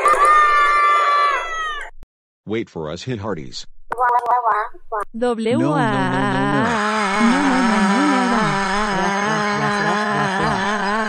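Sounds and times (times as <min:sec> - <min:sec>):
high-pitched cry: 0:06.4 - 0:11.0.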